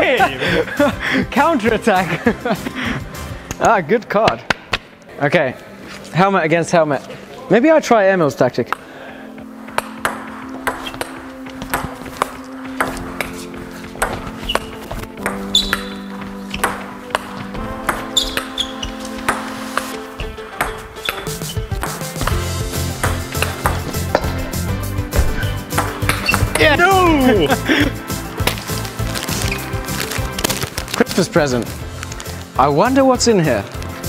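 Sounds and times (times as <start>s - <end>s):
background music: 0.0s - 34.0s
table tennis ball clicks: 14.0s - 19.9s.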